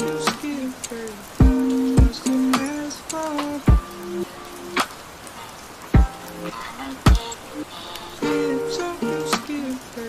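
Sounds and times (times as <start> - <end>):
slow lo-fi music: 0.0 - 4.9, 6.0 - 10.0
rain hiss: 0.0 - 10.0
deep kick-drum thump: 1.4 - 2.2.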